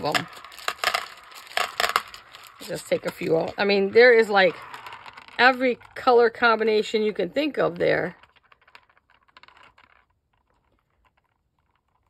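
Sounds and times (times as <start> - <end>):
beads clicking on a plate: 0.0 - 6.0.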